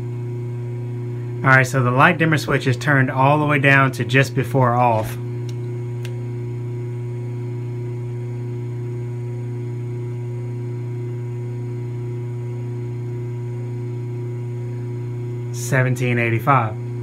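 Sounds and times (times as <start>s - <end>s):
electric motor humming: 0.0s - 17.0s.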